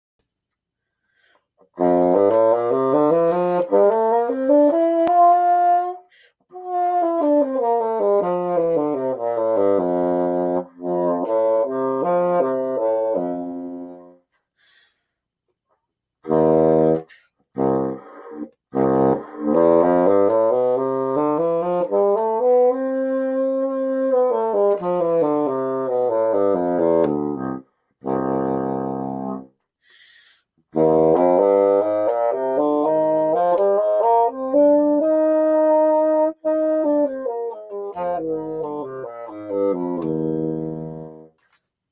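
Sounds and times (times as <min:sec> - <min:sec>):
bassoon playing scales: 0:01.7 - 0:14.2, 0:16.2 - 0:29.6, 0:30.7 - 0:41.4.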